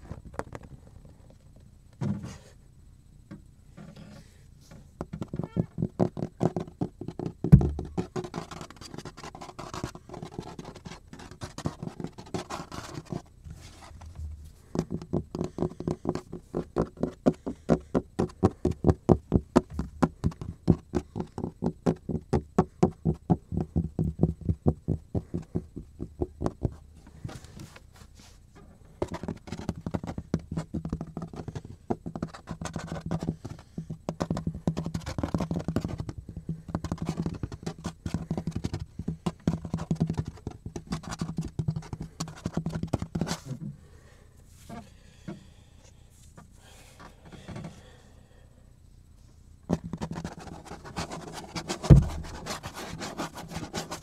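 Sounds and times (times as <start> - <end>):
low steady hum: 0.0 - 54.0.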